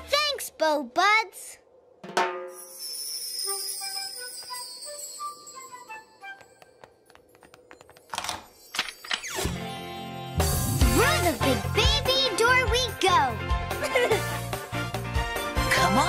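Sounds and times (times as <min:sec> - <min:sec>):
shimmering magic sparkle: 0:02.5 - 0:06.2
upbeat children's music: 0:09.6 - 0:16.0.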